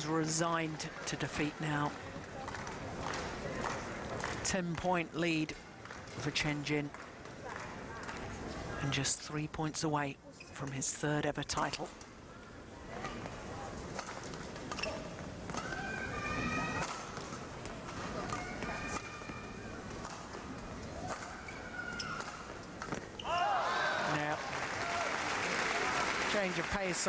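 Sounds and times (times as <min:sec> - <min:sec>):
racket hitting shuttlecock: 0:13.9 - 0:23.1
crowd applause and cheering: 0:23.3 - 0:26.9.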